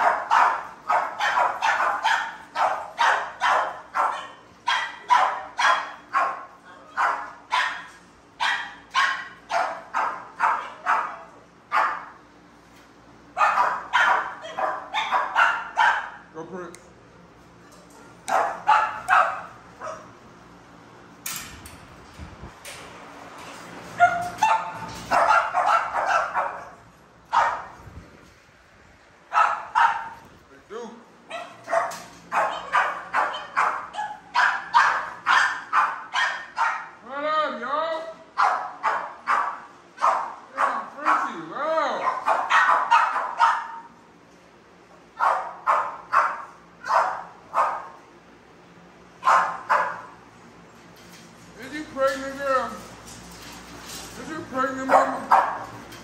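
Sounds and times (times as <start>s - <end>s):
dogs barking: 0.0s - 12.2s, 13.3s - 16.3s, 18.2s - 20.2s, 23.9s - 27.8s, 29.3s - 30.3s, 31.2s - 37.0s, 38.3s - 41.4s, 42.0s - 44.0s, 45.1s - 48.0s, 49.2s - 50.2s, 54.8s - 56.0s.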